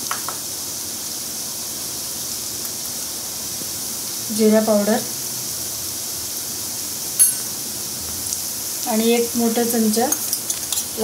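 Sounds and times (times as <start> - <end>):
onion frying in hot oil: 0.0 - 11.0.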